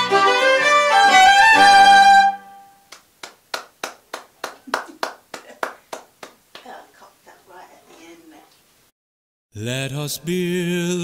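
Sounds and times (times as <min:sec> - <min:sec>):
violin note: 0:00.0 - 0:02.8
person clapping: 0:02.9 - 0:06.8.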